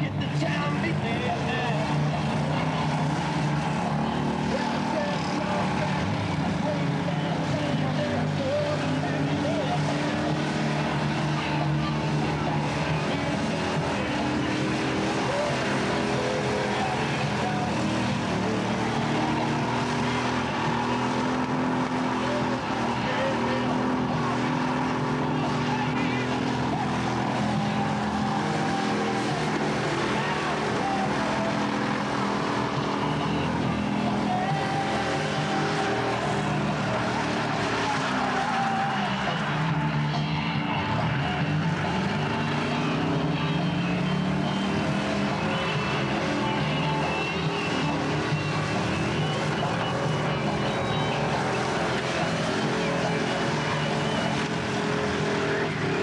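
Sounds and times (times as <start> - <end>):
car engine at high revs: 0.0 - 56.0
tyres squealing on tarmac: 0.0 - 56.0.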